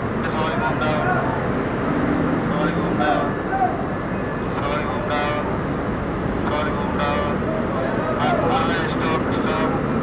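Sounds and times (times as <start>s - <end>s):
road traffic and heavy vehicles: 0.0s - 10.0s
indistinct voices: 2.4s - 5.6s, 6.4s - 10.0s.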